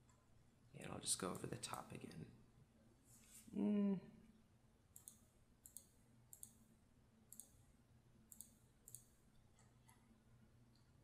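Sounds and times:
low room hum: 0:00.0 - 0:11.0
faint computer clicks: 0:05.0 - 0:06.6, 0:08.3 - 0:10.0.

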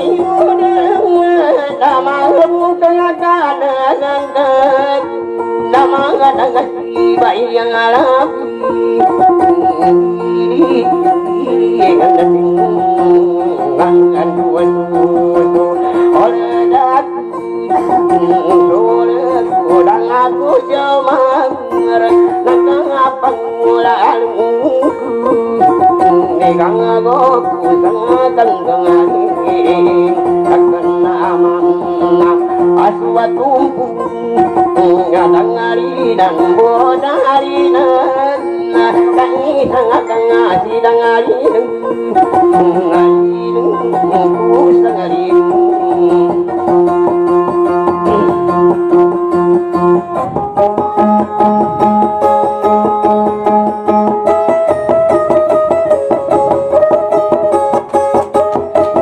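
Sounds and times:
plucked string instruments: 0:00.0 - 0:59.0.

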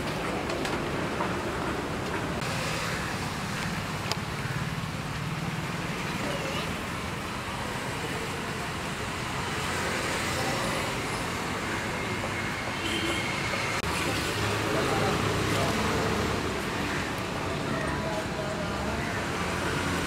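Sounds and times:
street traffic hum and rumble: 0:00.0 - 0:20.0
faint voices: 0:07.7 - 0:20.0.

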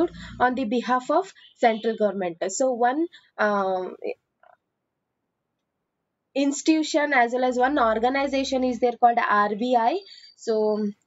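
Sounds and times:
faint throat sound: 0:00.0 - 0:00.6
woman speaking: 0:00.0 - 0:04.2, 0:06.4 - 0:11.0.

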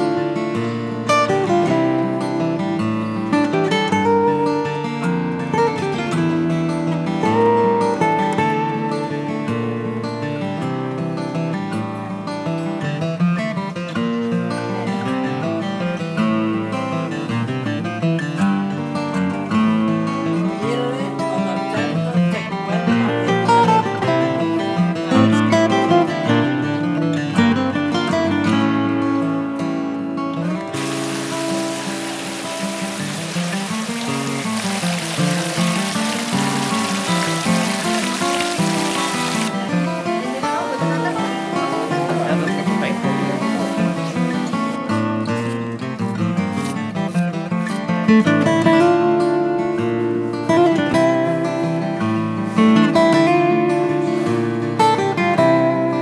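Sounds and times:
plucked string music: 0:00.0 - 0:56.0
steady hiss: 0:30.7 - 0:44.7.

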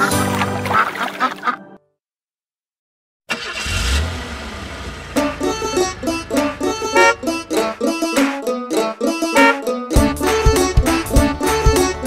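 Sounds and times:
cartoon bus engine rumble: 0:03.3 - 0:08.5
plucked banjo music: 0:05.2 - 0:12.0.

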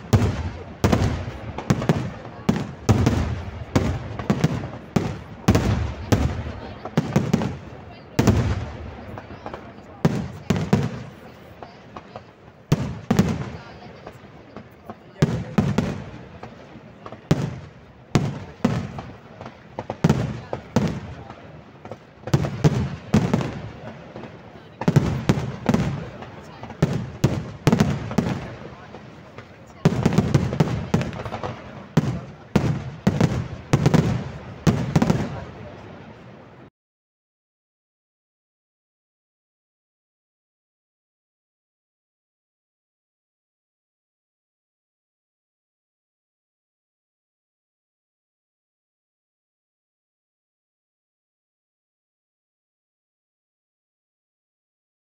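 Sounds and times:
fireworks bangs: 0:00.0 - 0:36.7.

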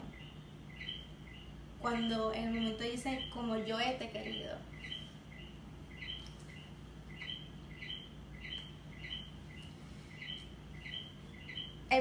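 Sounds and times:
bird chirping: 0:00.0 - 0:12.0
faint low hum: 0:00.0 - 0:12.0.

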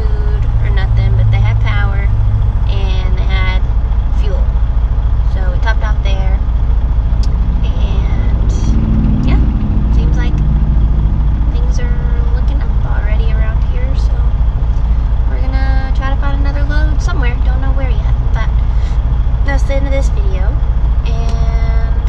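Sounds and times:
woman talking: 0:00.0 - 0:04.5, 0:05.3 - 0:06.5, 0:07.6 - 0:10.4, 0:11.5 - 0:22.0
diesel truck engine idling: 0:00.0 - 0:22.0.

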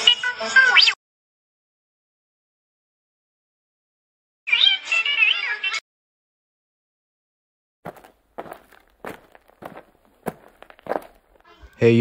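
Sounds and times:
footsteps: 0:07.9 - 0:11.7.

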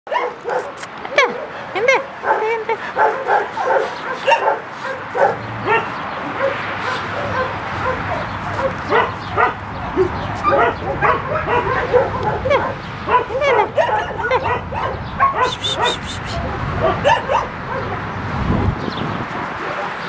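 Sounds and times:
puppies whining and yipping: 0:13.4 - 0:17.2.

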